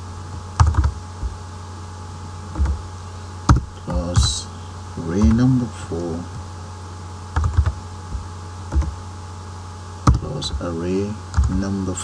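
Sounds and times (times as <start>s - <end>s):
steady low hum: 0.0s - 12.0s
computer keyboard typing: 0.6s - 1.4s, 2.6s - 2.8s, 5.2s - 5.5s, 7.4s - 9.0s, 11.3s - 11.7s.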